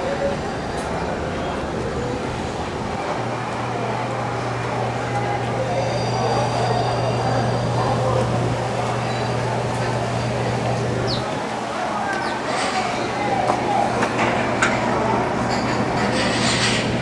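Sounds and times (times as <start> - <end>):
chatter of many voices: 0.0 - 17.0.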